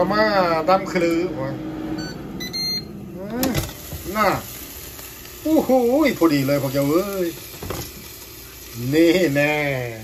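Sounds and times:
air fryer beep: 0.0 - 10.0.

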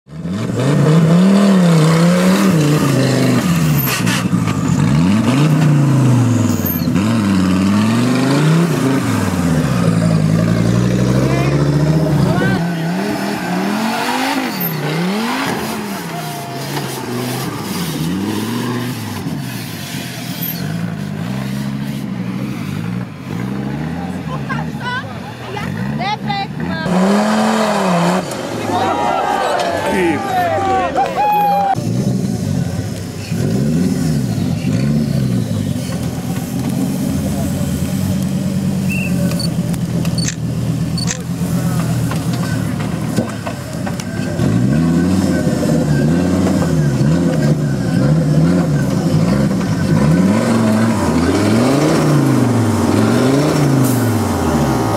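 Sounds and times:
engine revving hard: 0.1 - 24.8, 25.6 - 28.8, 44.3 - 54.9
voices: 8.4 - 21.3, 23.3 - 27.5, 28.1 - 31.8.

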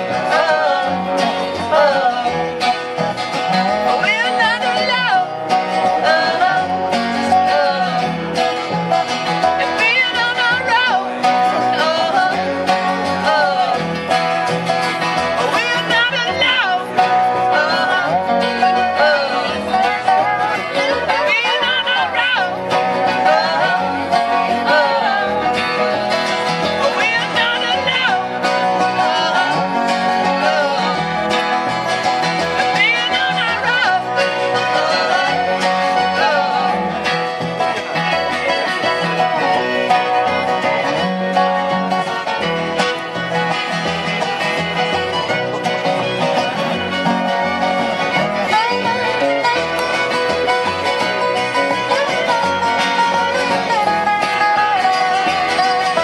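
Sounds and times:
fiddle: 0.0 - 56.0
strummed acoustic guitars: 0.0 - 56.0
upright bass: 0.0 - 56.0.

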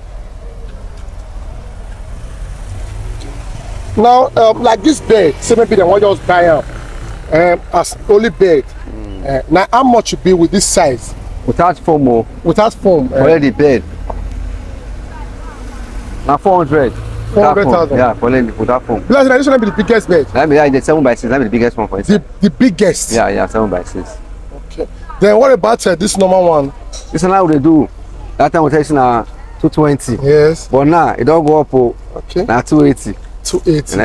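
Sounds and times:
faint voices: 3.9 - 9.6.

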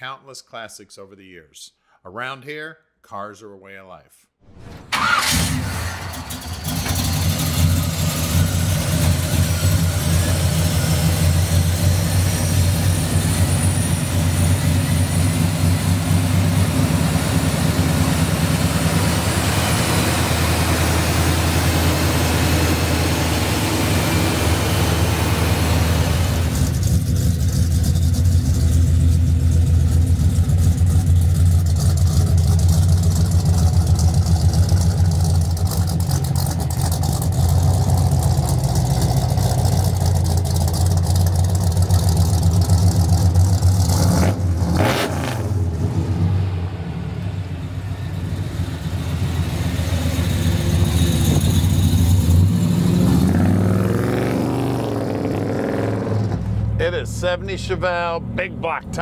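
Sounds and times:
brief sharp sound: 4.4 - 6.0
car engine revving away: 4.5 - 59.0
car engine idling: 4.8 - 44.6, 45.5 - 53.7.

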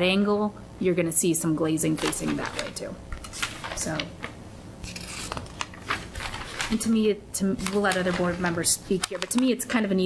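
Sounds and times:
paper sheets rustling: 1.8 - 7.0, 7.6 - 9.4.

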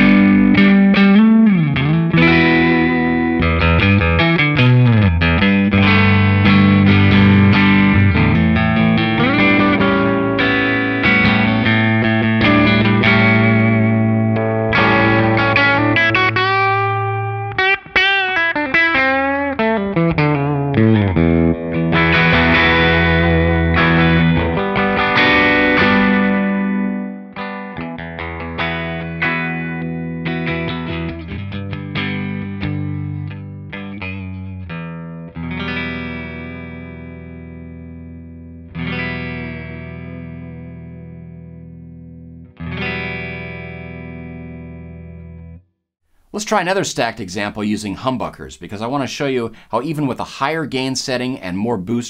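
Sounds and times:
electric guitar chords and notes: 0.0 - 46.4.

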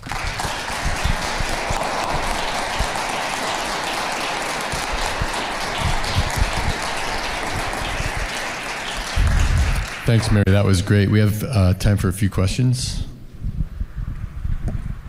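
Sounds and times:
audience applauding: 0.0 - 10.5.

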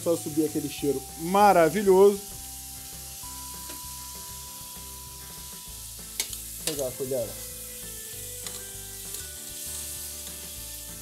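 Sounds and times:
background music: 0.0 - 11.0
liver sizzling in frying pan: 0.0 - 11.0.

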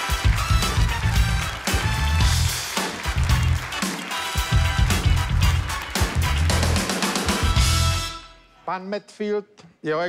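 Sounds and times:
drum kit beat: 0.0 - 8.3
bass guitar: 0.1 - 3.8, 4.4 - 8.2.

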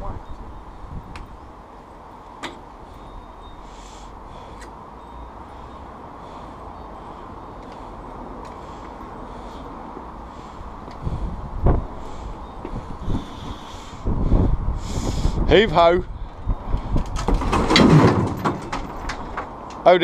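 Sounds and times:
wind rumbling on microphone: 0.0 - 1.6, 10.5 - 19.6.

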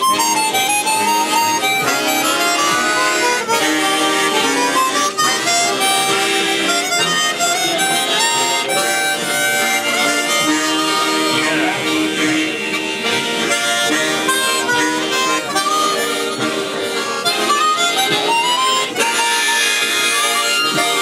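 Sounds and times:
harmonica ensemble playing: 0.0 - 21.0.

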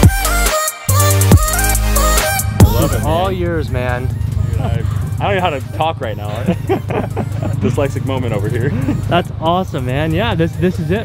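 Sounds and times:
music with pulsing bass: 0.0 - 11.0
laughter: 6.3 - 7.8.

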